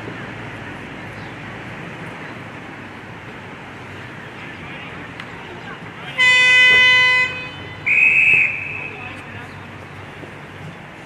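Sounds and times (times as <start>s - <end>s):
horn steady tone: 6.1s - 9.2s
short high whistle blast: 7.9s - 9.0s.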